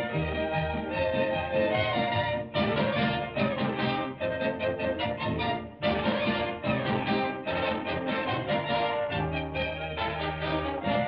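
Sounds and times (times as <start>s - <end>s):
bouncy orchestral cartoon music: 0.0s - 11.0s.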